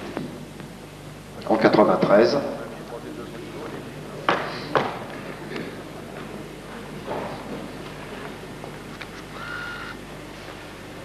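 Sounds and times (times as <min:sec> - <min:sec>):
large hall background: 0:00.0 - 0:11.0.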